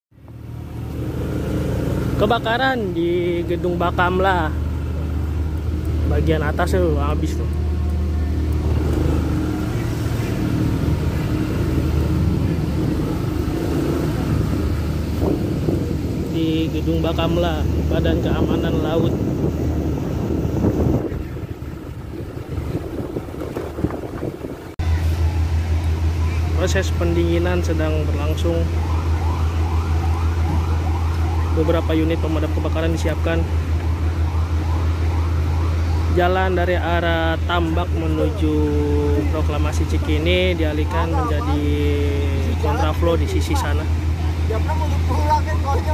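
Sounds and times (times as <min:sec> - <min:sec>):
road noise: 0:00.1 - 0:45.9
vehicle engines humming: 0:00.1 - 0:45.9
steady low rumble: 0:02.2 - 0:35.6
faint emergency siren: 0:04.5 - 0:23.2, 0:24.9 - 0:39.4.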